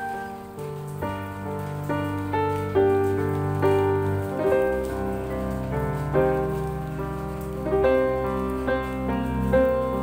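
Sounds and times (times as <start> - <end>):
rain pattering: 0.0 - 10.0
slow gentle piano music: 0.0 - 10.0.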